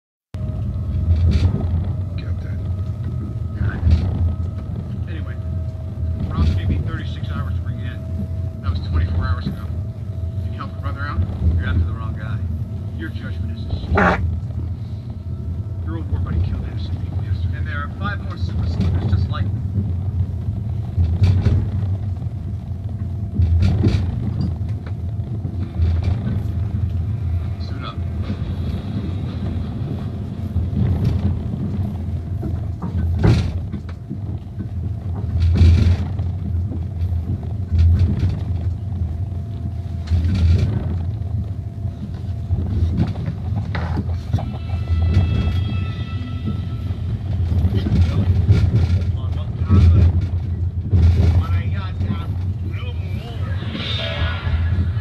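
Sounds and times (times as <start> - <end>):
vehicle engine rumble: 0.3 - 55.0
voices talking: 4.7 - 14.3, 51.3 - 54.9.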